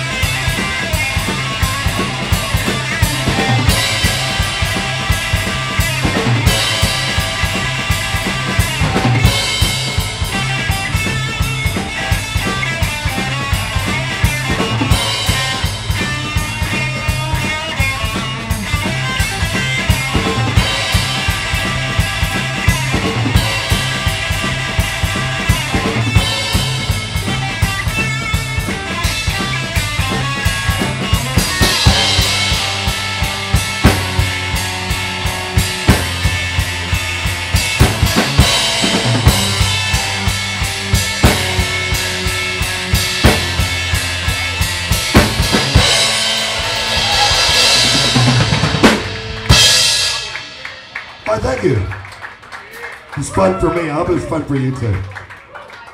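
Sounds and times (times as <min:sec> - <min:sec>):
electric guitar: 0:00.0 - 0:52.5
bass guitar: 0:00.0 - 0:55.0
drum kit driving beat: 0:00.0 - 0:55.0
cymbal crash ringing out: 0:44.9 - 0:51.7.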